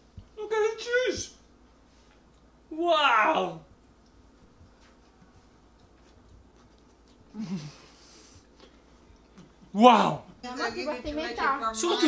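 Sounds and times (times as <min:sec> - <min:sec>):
loud vocal exclamation: 0:02.7 - 0:03.7.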